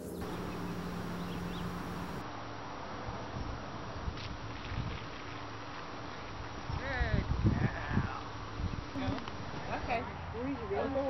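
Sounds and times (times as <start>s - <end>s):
wind buffeting microphone: 6.6s - 9.7s.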